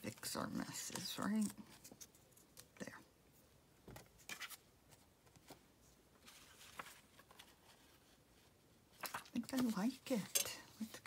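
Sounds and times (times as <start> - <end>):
paper rustling and tapping: 9.0 - 10.3.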